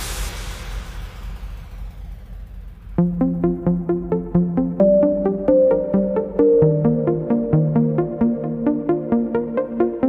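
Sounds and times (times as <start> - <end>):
low steady rumble: 0.0 - 7.5
synth noise wash: 0.0 - 10.0.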